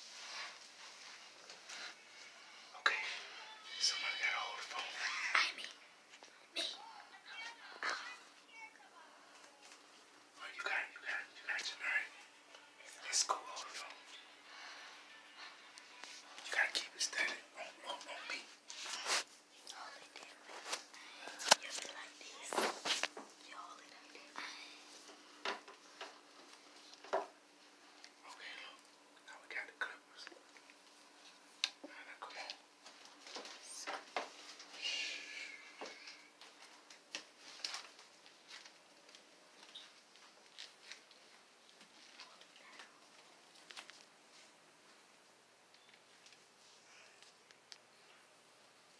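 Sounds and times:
faint cloth rustles: 0:00.0 - 0:03.3, 0:14.6 - 0:25.2
whispering voices: 0:01.7 - 0:05.8, 0:06.5 - 0:14.2, 0:16.0 - 0:25.0, 0:28.1 - 0:30.4, 0:31.8 - 0:32.6.

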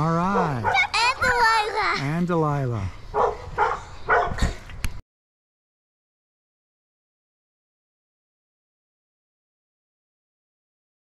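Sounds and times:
dog barking: 0:00.3 - 0:00.9, 0:03.1 - 0:04.5.

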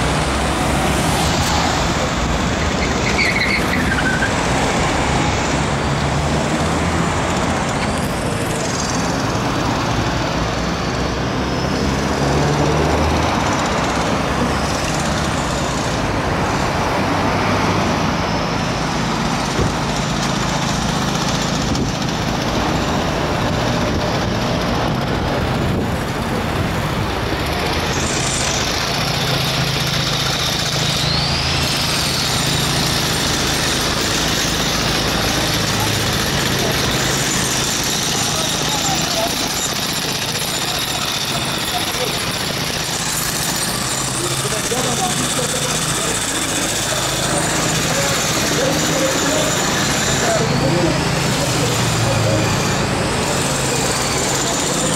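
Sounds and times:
road traffic driving past: 0:00.0 - 0:54.9.

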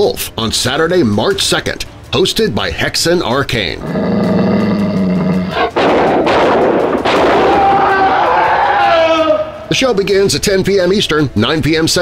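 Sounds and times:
low growling voice: 0:03.8 - 0:05.7
long held high cry: 0:07.4 - 0:09.7.

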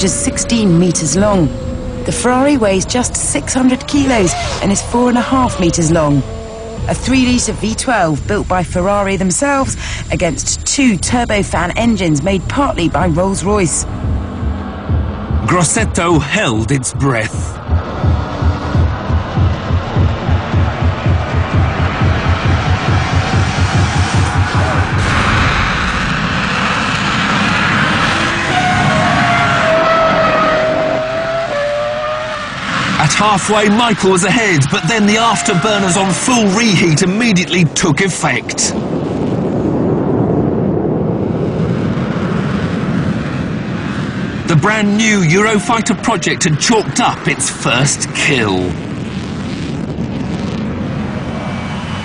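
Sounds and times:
racing car accelerating: 0:00.0 - 0:07.8, 0:13.1 - 0:36.8
high whine: 0:00.0 - 0:52.0
jet engines roaring: 0:00.0 - 0:52.0.

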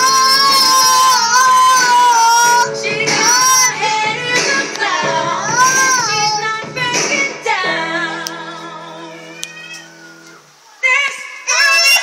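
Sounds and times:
girl singing: 0:00.0 - 0:10.0, 0:10.8 - 0:12.0
pop song: 0:00.0 - 0:12.0.

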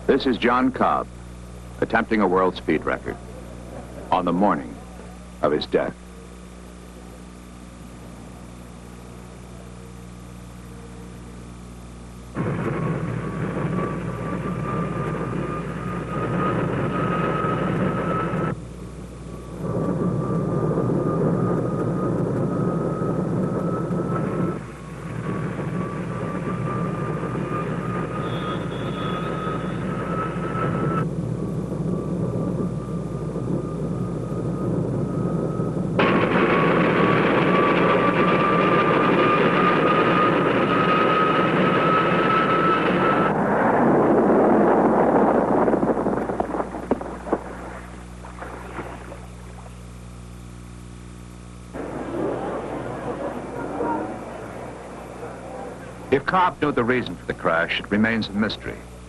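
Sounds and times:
turbojet engine whine: 0:00.0 - 0:59.0.

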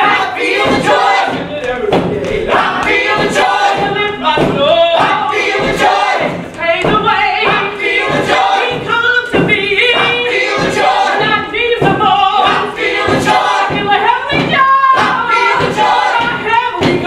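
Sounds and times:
ensemble singing together: 0:00.0 - 0:17.0
steady beat: 0:00.0 - 0:17.0.

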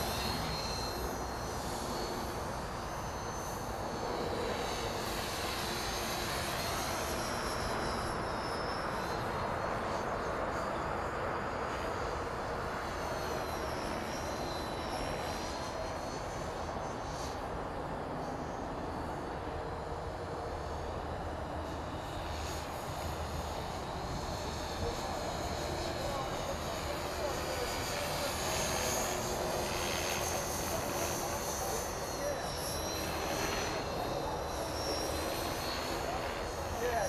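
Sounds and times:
rc helicopter rotor whine: 0:00.0 - 0:37.0.

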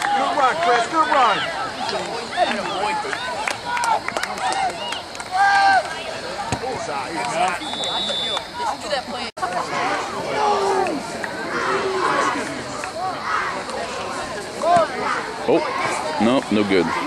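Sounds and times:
spectators shouting: 0:00.0 - 0:17.0.

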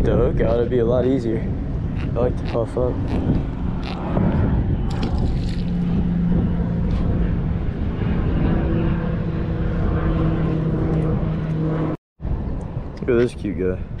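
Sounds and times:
rough low rumble: 0:00.0 - 0:14.0
steady engine hum: 0:00.0 - 0:14.0.

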